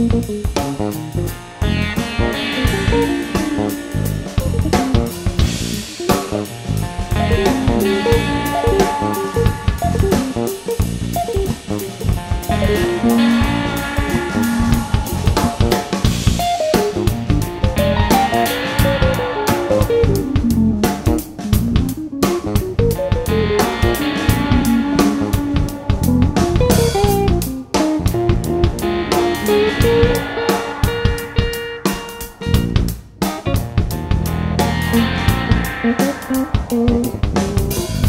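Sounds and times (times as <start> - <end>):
drum kit: 0.0 - 38.0
electric bass: 0.0 - 38.0
electric guitar melody: 0.0 - 38.0.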